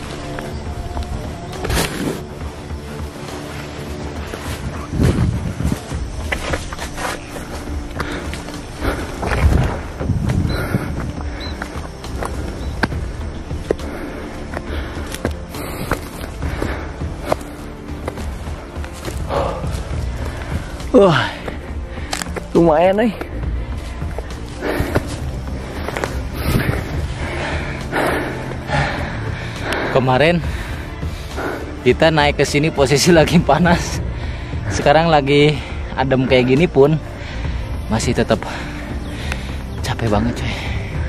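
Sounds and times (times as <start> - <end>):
ground crunching and snapping underfoot: 0.0 - 31.2
footsteps on grass and soil: 0.0 - 34.0.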